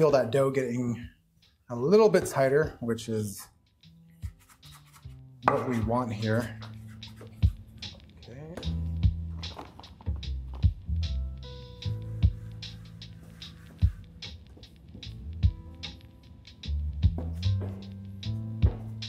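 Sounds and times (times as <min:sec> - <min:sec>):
background music with steady beat: 0:00.0 - 0:19.0.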